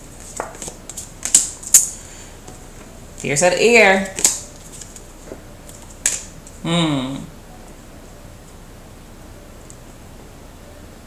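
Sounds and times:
cards clicking on wooden table: 4.1 - 5.0.

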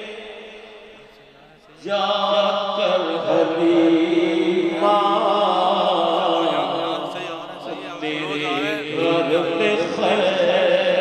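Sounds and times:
man singing into a microphone: 0.0 - 1.1, 1.7 - 11.0.

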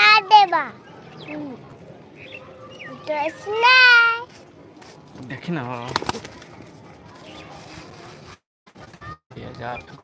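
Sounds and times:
wings flapping and rustling: 5.7 - 9.0
pigeon wings clapping: 5.8 - 6.7.

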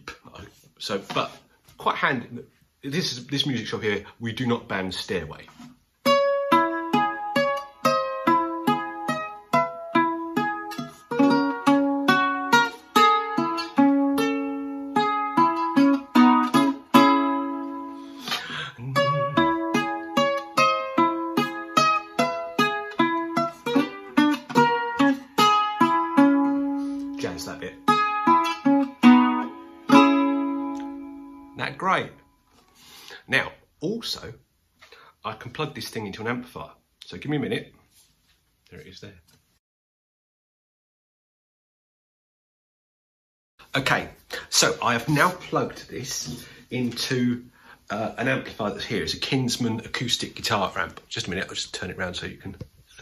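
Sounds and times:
ukulele fingerpicked with chorus effect: 5.5 - 31.6.

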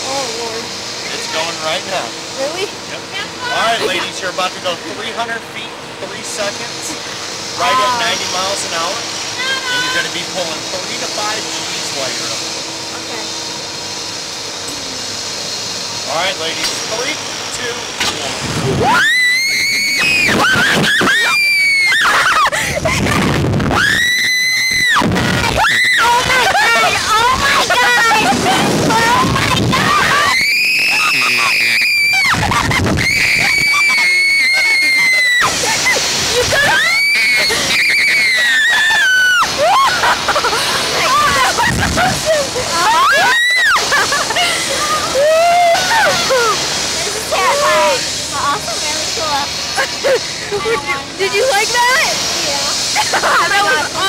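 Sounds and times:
ride machinery hum and whine: 0.0 - 54.0
girls screaming: 18.8 - 48.1
faint voices: 25.0 - 54.0.

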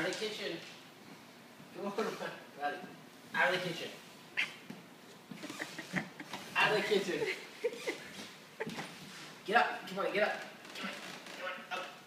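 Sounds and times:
dog whining: 4.4 - 4.7.

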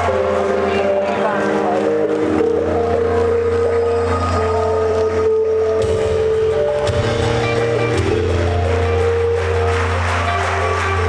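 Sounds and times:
drums beating: 5.8 - 11.0
live rock band playing: 5.8 - 11.0.

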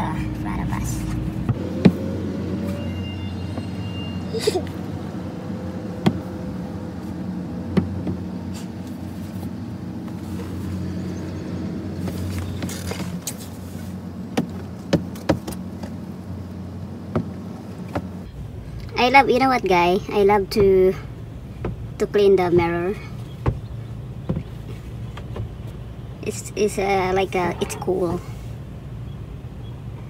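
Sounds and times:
low mechanical hum: 0.0 - 30.0.

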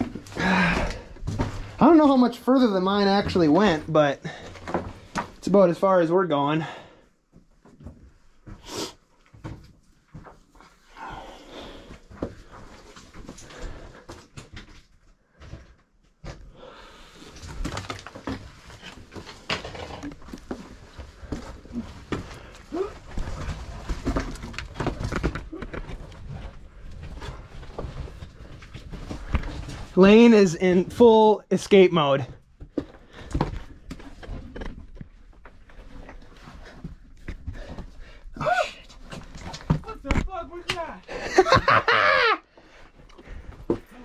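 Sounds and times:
person panting: 0.3 - 1.3, 10.9 - 12.0.

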